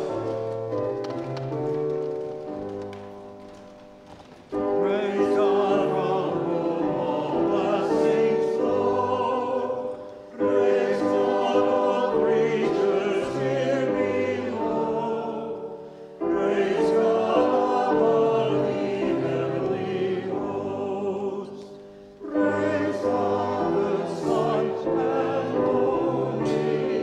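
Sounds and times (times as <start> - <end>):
congregation singing a hymn: 0.0 - 0.5, 4.6 - 27.0
organ accompaniment: 0.0 - 27.0.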